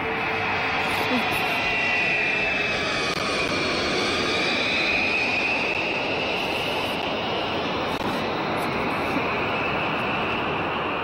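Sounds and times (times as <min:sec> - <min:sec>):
high engine whine: 0:00.0 - 0:11.0
jet engines roaring: 0:00.0 - 0:11.0.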